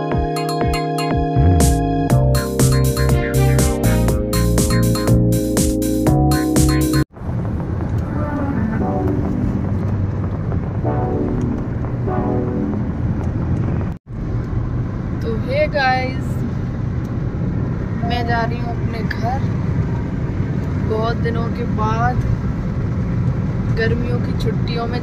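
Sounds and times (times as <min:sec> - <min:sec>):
car road and engine noise: 0:06.2 - 0:25.0.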